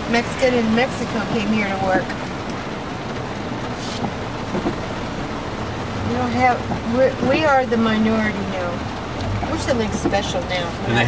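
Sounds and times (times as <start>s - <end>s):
engine and tyre rumble: 0.0s - 11.0s.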